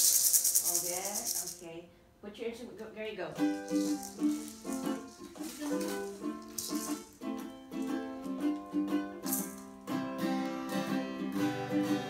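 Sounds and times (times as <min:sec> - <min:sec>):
shaken rattles: 0:00.0 - 0:01.7, 0:03.4 - 0:08.0, 0:09.2 - 0:09.8
ukulele-like string instrument: 0:03.3 - 0:12.0.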